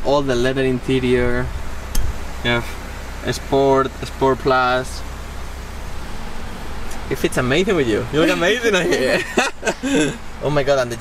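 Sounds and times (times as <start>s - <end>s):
car cabin hum and hiss: 0.0s - 11.0s.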